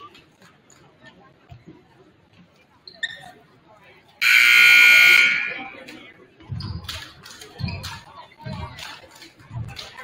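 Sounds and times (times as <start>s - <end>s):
scoreboard horn buzz: 4.2s - 5.8s.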